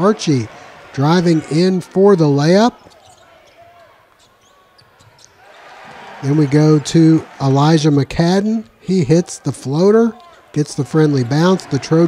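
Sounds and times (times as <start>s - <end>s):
shoe squeaks on court: 2.8s - 5.4s.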